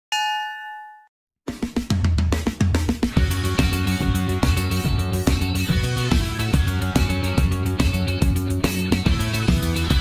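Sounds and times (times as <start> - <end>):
notification bell chime: 0.1 - 1.1
backing track with drums and bass: 1.5 - 10.0.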